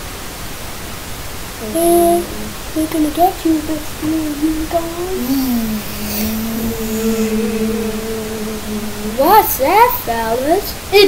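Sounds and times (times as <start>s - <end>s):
child humming one note: 1.6s - 10.5s.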